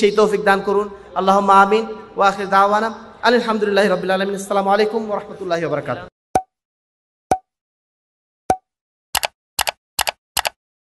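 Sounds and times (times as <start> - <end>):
quick double clicks: 9.2 - 10.6.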